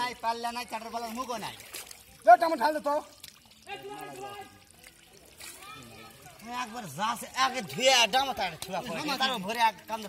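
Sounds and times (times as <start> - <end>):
shallow water splashing: 0.0 - 9.9.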